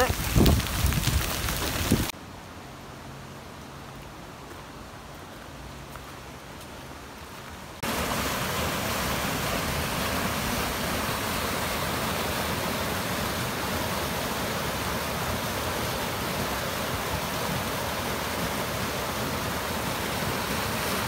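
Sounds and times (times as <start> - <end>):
water rushing down rocky creek: 0.0 - 2.2, 7.8 - 21.0.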